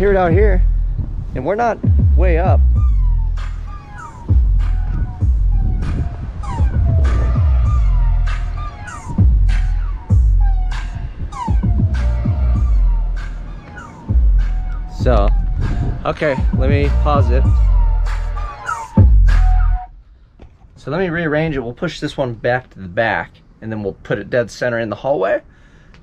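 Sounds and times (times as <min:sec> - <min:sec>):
bass-heavy music through speakers: 0:00.0 - 0:19.9.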